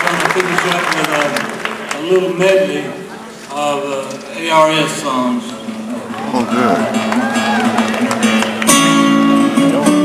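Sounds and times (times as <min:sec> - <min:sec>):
acoustic guitar strumming: 0:05.3 - 0:10.0.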